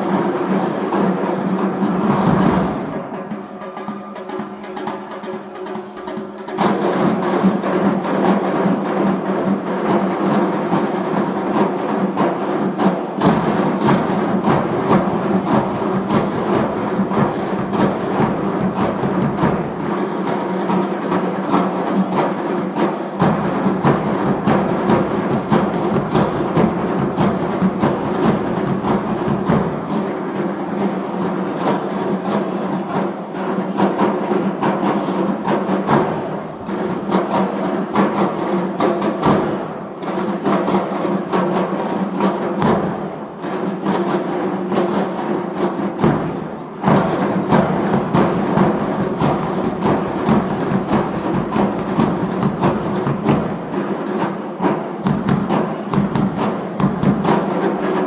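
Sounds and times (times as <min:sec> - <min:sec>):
hand drums playing fast rhythm: 0:00.1 - 0:58.0.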